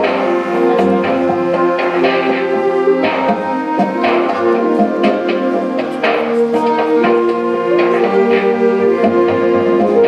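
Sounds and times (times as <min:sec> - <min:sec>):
concert band playing chords: 0:00.0 - 0:10.0.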